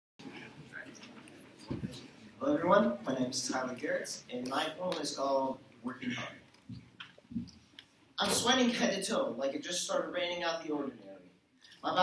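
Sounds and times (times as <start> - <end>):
microphone knock and rustle: 1.6 - 2.1, 6.6 - 7.6.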